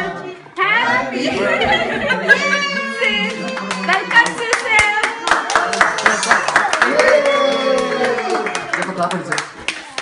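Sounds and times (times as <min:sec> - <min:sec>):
people clapping: 0:03.0 - 0:10.0.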